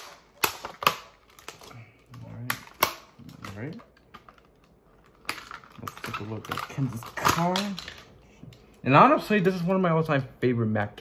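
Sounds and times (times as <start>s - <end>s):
plastic packaging clicks and snaps: 0.0s - 8.7s.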